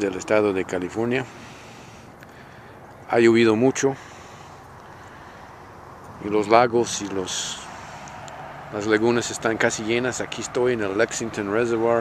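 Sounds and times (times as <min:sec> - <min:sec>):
steady outdoor background noise: 0:00.0 - 0:12.0.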